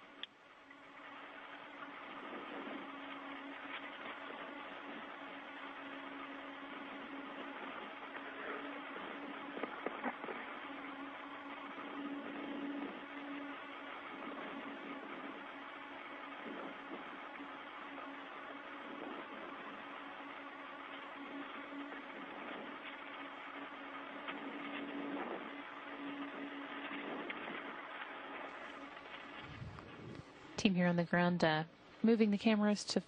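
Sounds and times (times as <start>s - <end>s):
low steady hum: 0.0s - 33.0s
radio channel hiss: 0.0s - 33.0s.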